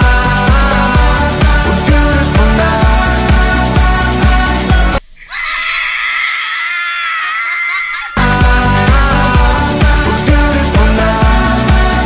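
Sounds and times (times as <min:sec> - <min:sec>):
women screaming in excitement: 0:05.2 - 0:08.2.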